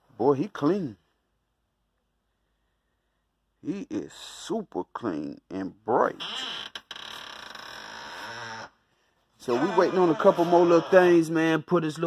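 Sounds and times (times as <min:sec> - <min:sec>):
man holding a wordless sound: 0:09.4 - 0:11.5.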